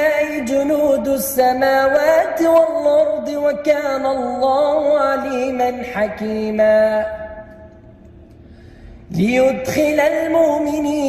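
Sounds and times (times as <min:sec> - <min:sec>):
man reciting melodically: 0:00.0 - 0:07.7, 0:09.0 - 0:11.0.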